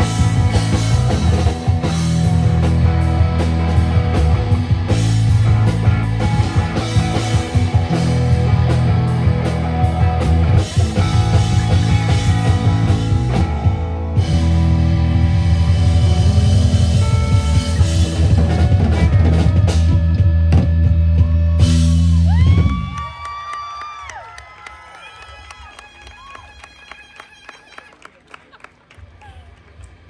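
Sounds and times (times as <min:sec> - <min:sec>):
electric guitar notes bending: 0:00.0 - 0:22.7
rock band playing loudly: 0:00.0 - 0:22.9.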